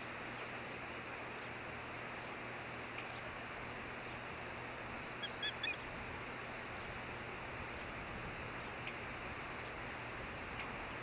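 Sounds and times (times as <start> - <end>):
bird chirping: 5.2 - 5.8.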